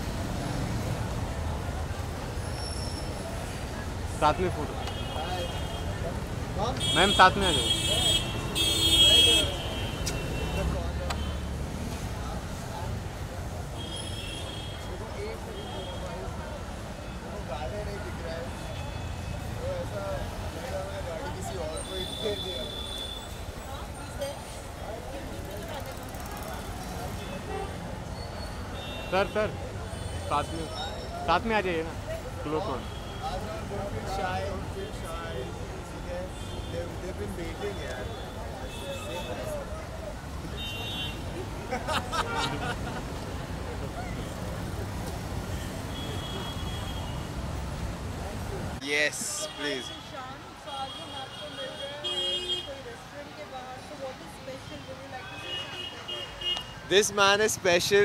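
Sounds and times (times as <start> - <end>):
street traffic rumble: 0.0 - 58.0.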